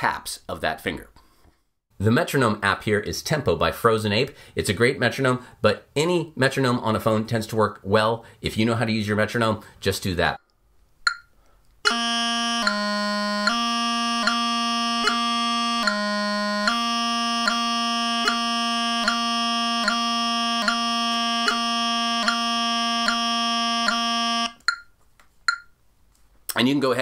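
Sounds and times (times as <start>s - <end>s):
metronome clicking: 11.1s - 12.0s, 12.6s - 25.8s
bagpipe practice chanter playing: 11.9s - 24.6s.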